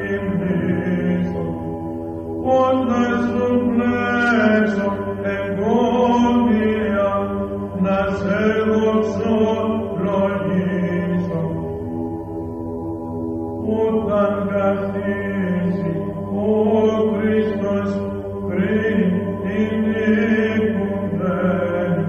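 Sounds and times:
steady low drone: 0.0s - 22.0s.

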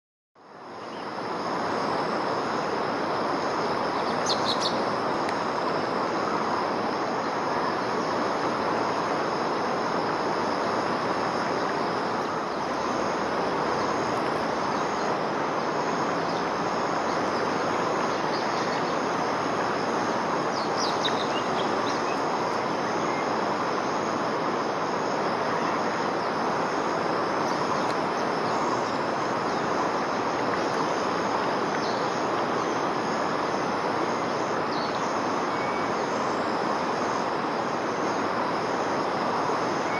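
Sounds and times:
high insect drone: 0.4s - 39.9s
rushing outdoor background: 0.4s - 39.9s
high bird calls: 4.0s - 4.8s.

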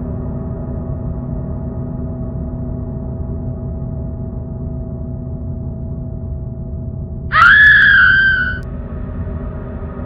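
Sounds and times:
low droning horror score: 0.0s - 10.0s
high scream: 7.3s - 8.6s.

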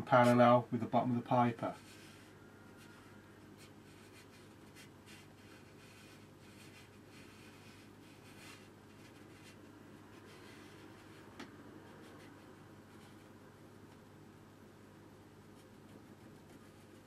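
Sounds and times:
low steady hum: 0.0s - 17.0s
brush swishing on paper: 1.7s - 13.3s.

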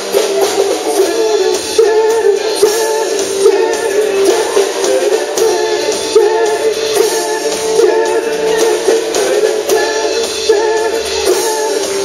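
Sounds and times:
drums: 0.0s - 12.0s
person singing lead vocal: 0.0s - 12.0s.

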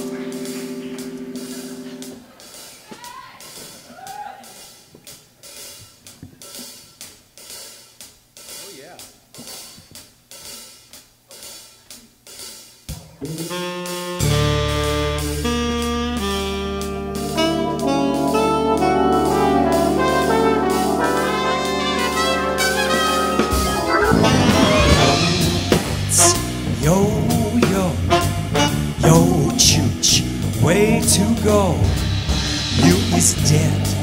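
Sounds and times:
saxophones and brass: 0.0s - 2.4s, 13.3s - 34.0s
live band playing: 0.0s - 2.8s, 13.0s - 34.0s
drum beat on hi-hat and cymbal: 0.0s - 34.0s.

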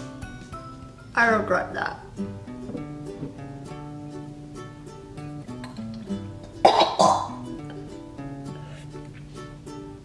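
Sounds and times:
ukulele music: 0.0s - 10.0s
person coughing loudly: 6.6s - 7.4s.

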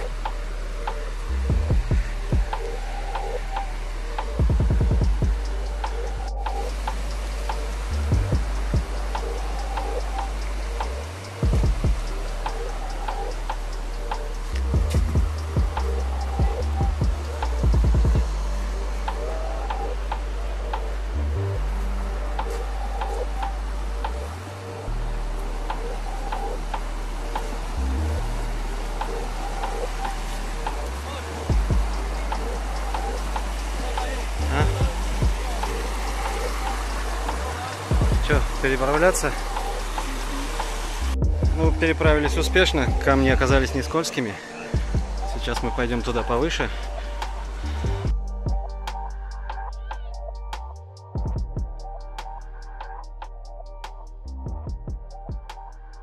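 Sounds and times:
low rumble bursts: 0.0s - 44.0s, 44.8s - 56.0s
stream water rushing over rock: 0.0s - 48.1s
background music: 0.0s - 56.0s.

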